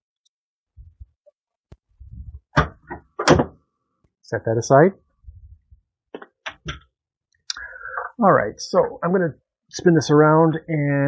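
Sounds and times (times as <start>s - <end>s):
low rumble: 2.0s - 2.5s.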